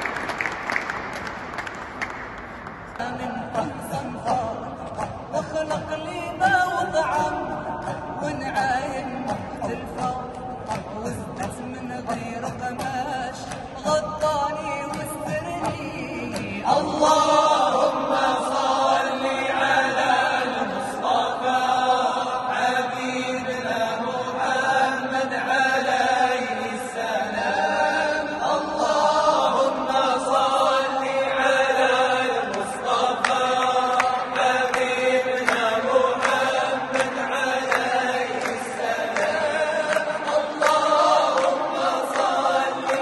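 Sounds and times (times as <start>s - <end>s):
men chanting a cappella: 3.0s - 43.0s.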